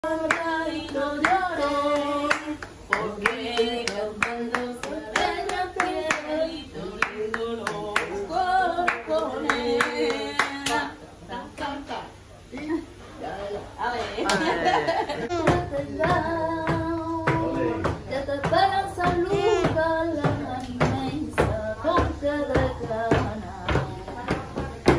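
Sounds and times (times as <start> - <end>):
flamenco-style singing: 0.0 - 12.0, 13.2 - 24.9
rhythmic hand clapping: 0.2 - 8.2, 8.8 - 10.9, 15.4 - 24.9.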